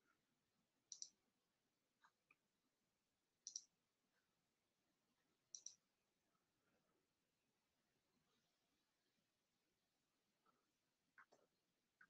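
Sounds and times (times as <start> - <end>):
computer mouse clicks: 0.9 - 1.2, 3.4 - 3.7, 5.5 - 5.8.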